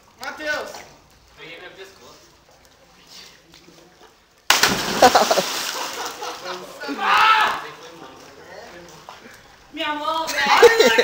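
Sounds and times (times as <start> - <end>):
water spraying and sloshing: 0.0 - 6.6
loud splash into pool: 4.5 - 6.2.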